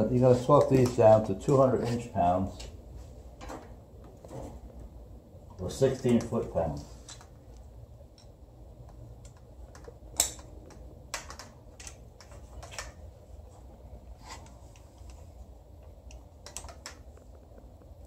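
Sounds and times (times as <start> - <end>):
wrench clicking on bolts: 9.2 - 12.0.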